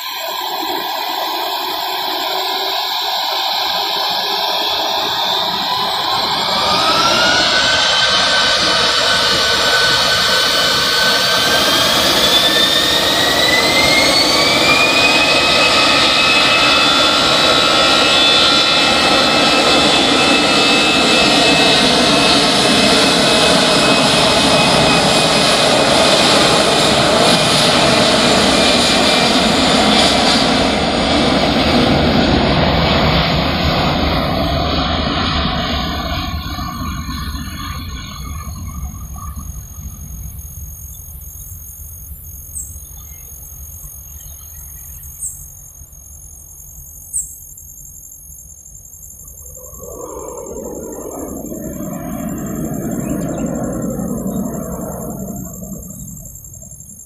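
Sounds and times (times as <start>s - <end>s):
jet engine whine: 0.0s - 57.0s.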